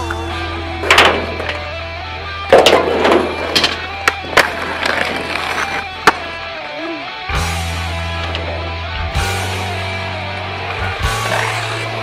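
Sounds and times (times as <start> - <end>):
background music with bass line: 0.0 - 12.0
skateboard wheels rolling on concrete: 0.0 - 12.0
skateboard clacks: 2.5 - 6.4.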